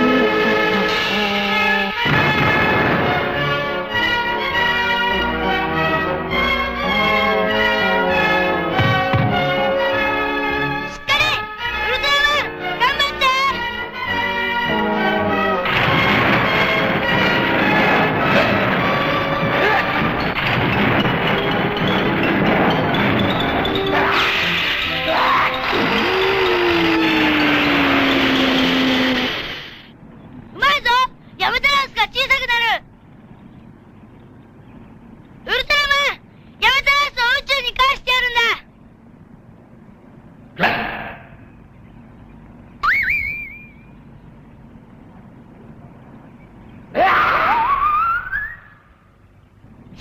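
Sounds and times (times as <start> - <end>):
swooping sound effect: 15.6 - 29.8
short rising cry: 23.3 - 29.9
monster roar: 24.0 - 29.8.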